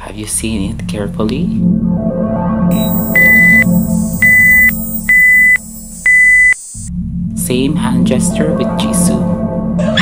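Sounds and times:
background music: 0.4 - 10.0
high electronic beeps: 2.7 - 6.9.

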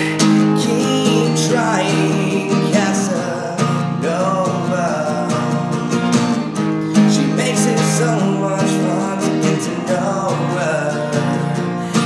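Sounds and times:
acoustic guitar strumming: 0.0 - 12.0
man singing: 0.0 - 12.0.

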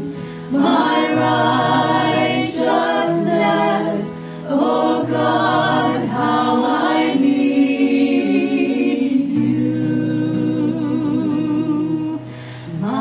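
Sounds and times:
acoustic guitar: 0.0 - 13.0
group singing worship song: 0.0 - 13.0.

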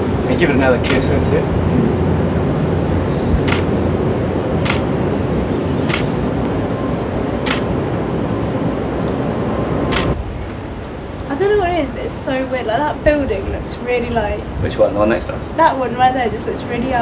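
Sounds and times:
steady background noise: 0.0 - 17.0
camera shutter clicks: 3.5 - 3.8, 4.6 - 4.9, 5.9 - 6.2, 7.4 - 7.7, 9.9 - 10.2.

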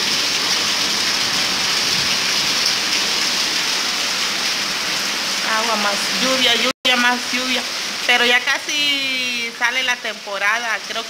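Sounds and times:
heavy rain pouring: 0.0 - 11.0.

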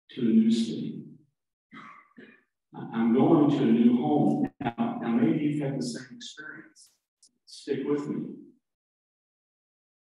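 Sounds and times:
man speaking: 0.1 - 1.1, 2.7 - 8.4.

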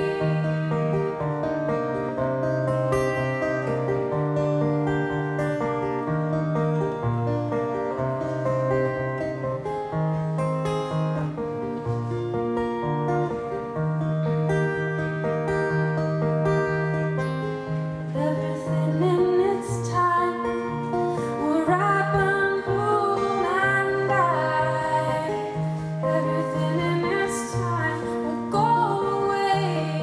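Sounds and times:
acoustic guitar picking: 0.0 - 30.0.

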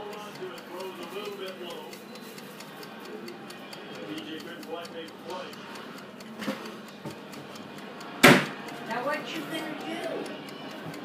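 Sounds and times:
quick even ticking: 0.0 - 11.0.

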